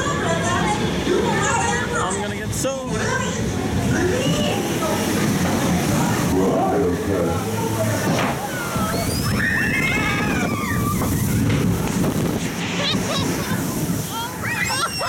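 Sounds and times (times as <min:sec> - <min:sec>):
voices in background: 0:00.0 - 0:11.8
water sloshing and rushing: 0:00.0 - 0:15.0.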